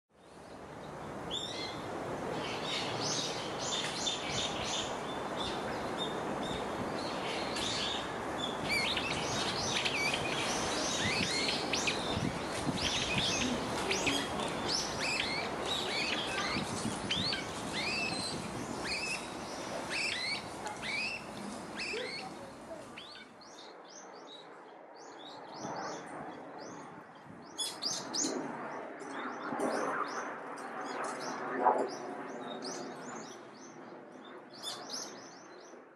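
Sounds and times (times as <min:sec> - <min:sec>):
songbirds chirping: 0:00.2 - 0:30.3.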